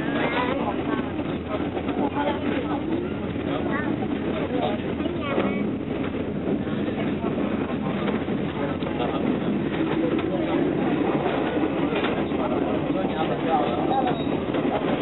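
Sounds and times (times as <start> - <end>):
passengers chatting: 0.0 - 15.0
train running noise: 0.0 - 15.0.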